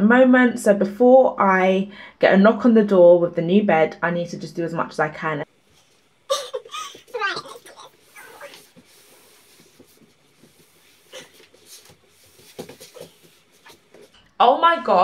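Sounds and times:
shuffling and bumping: 6.7s - 14.2s.

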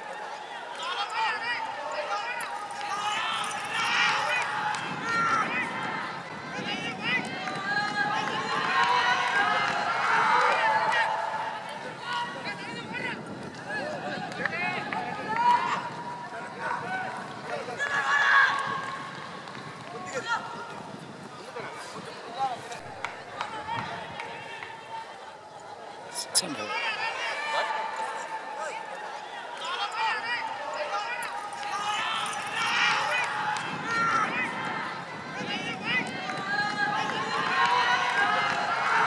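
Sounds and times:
stadium background noise: 0.0s - 39.0s.

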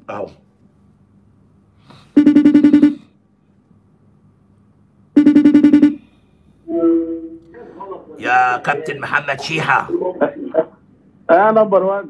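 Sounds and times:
phone ringing tone pulsed buzzing: 2.2s - 3.1s, 5.2s - 6.1s.

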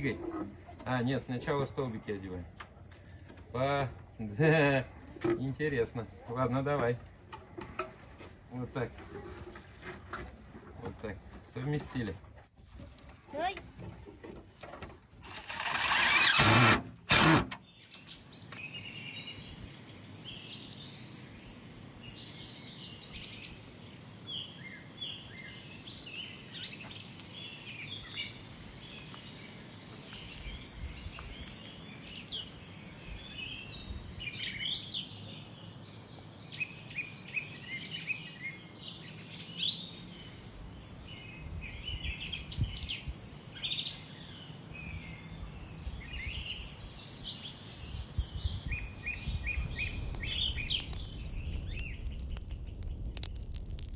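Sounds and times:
outdoor background noise: 0.0s - 53.9s
birds singing and chirping: 15.4s - 53.9s.

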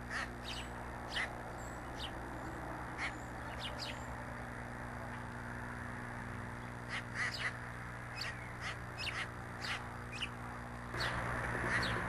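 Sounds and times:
low hum and hiss: 0.0s - 12.0s
songbirds chirping: 0.0s - 12.0s.

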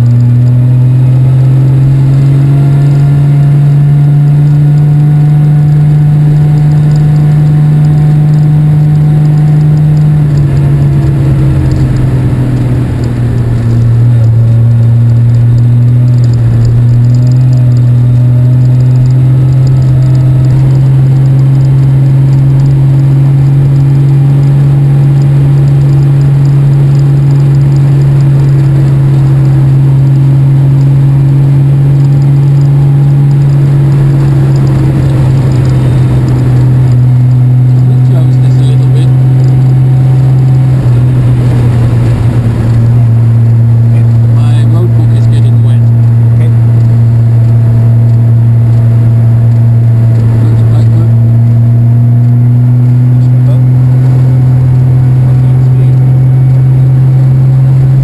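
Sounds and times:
car engine running: 0.0s - 58.0s.

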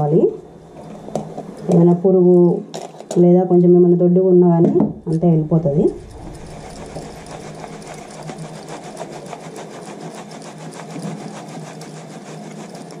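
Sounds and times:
sieve tapping and rattling: 4.6s - 13.0s.

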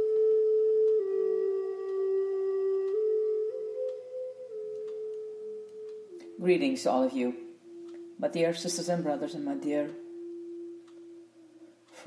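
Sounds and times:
sustained low music tone: 0.0s - 12.0s.

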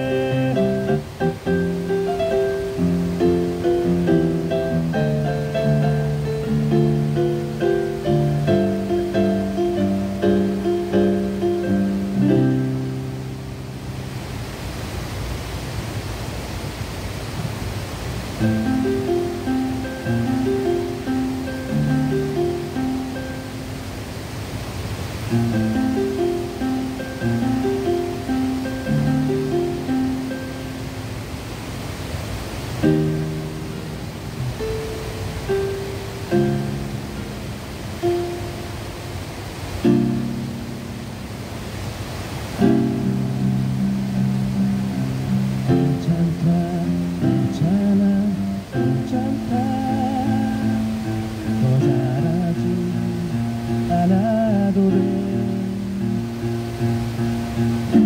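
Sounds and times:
electric keyboard playing pop song: 0.0s - 13.8s, 18.4s - 23.9s, 25.3s - 31.2s, 32.8s - 39.0s, 39.8s - 41.2s, 42.6s - 58.0s
water rushing over weir: 0.0s - 58.0s.

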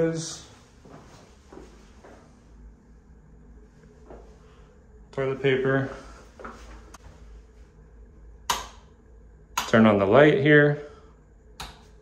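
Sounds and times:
light switch click: 8.5s - 8.9s.

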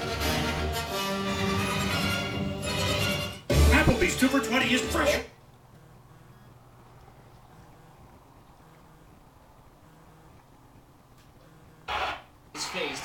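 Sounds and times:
low steady hum: 3.7s - 12.6s.

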